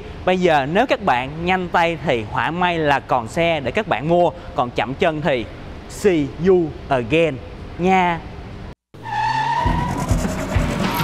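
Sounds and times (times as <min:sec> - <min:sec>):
tyre squeal: 0:09.0 - 0:11.0
music with heavy bass beats: 0:09.6 - 0:11.0.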